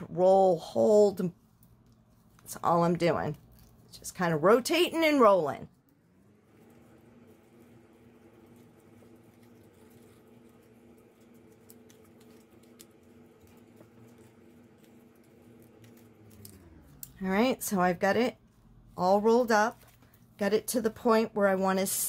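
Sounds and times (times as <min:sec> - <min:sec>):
faint steady hum: 0:00.0 - 0:22.0
paper crinkling: 0:01.3 - 0:04.1, 0:05.8 - 0:17.2, 0:18.2 - 0:21.0.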